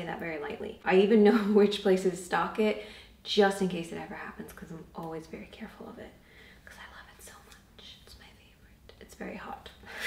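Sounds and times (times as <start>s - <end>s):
person whispering: 6.6s - 9.7s.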